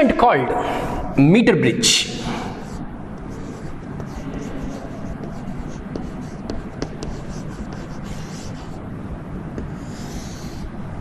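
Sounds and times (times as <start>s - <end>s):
low background hum: 0.0s - 11.0s
chalk scratching on chalkboard: 2.6s - 8.8s, 9.6s - 10.7s.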